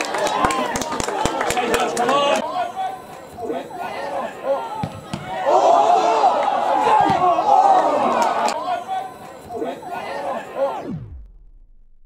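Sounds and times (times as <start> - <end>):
crowd shouting: 0.0 - 10.9.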